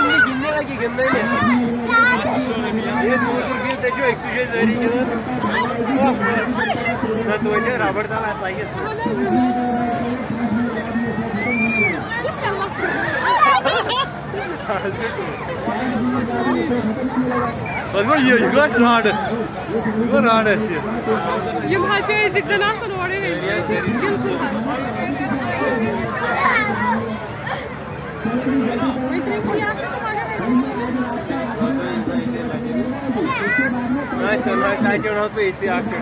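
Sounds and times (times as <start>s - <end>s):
children chattering: 0.0s - 36.0s.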